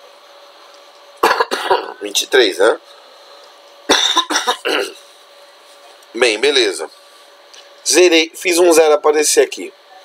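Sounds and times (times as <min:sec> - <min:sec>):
man coughing: 0:01.2 - 0:02.0, 0:03.9 - 0:05.0.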